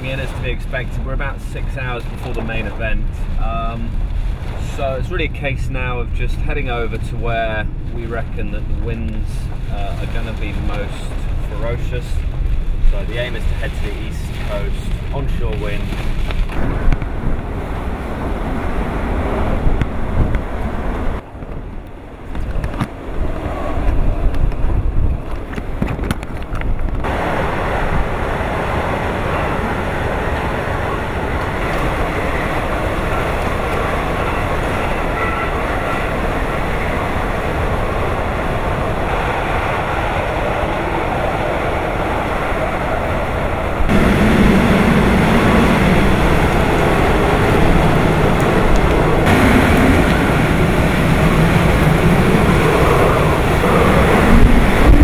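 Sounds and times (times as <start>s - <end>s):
strong wind and driving rain: 0.0s - 55.0s
wind buffeting on microphone: 0.0s - 55.0s.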